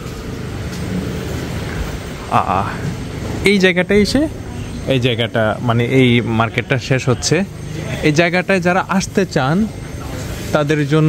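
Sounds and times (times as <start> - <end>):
passing traffic: 0.0 - 11.0.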